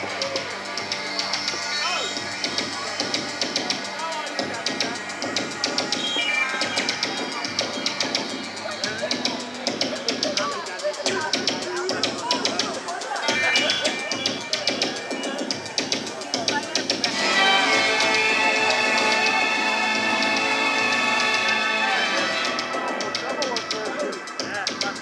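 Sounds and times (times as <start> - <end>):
crowd voices: 0.0 - 25.0
sharp rhythmic clicks: 0.0 - 25.0
synth chord: 17.1 - 23.5.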